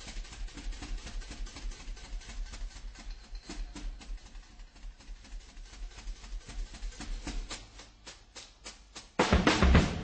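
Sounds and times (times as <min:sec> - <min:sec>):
drum and cymbal hits: 0:00.0 - 0:10.0.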